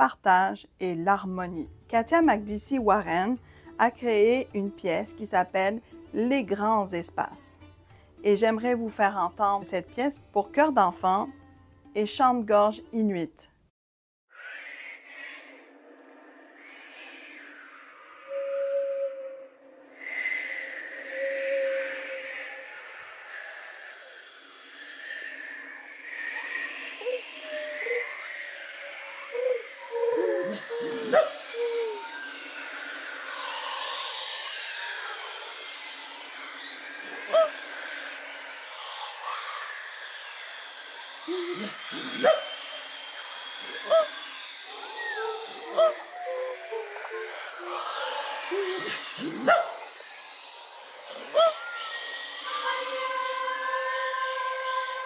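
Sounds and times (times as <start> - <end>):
sliding vocal cries: 25.6 - 50.2, 51.1 - 55.0.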